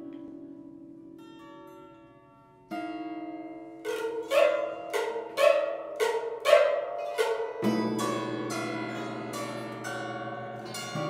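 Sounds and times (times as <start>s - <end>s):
bowed guitar ringing notes: 0.0s - 11.0s.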